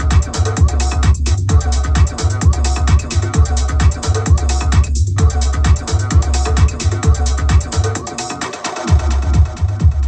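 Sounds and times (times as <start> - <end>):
techno house mix with heavy bass: 0.0 - 10.0.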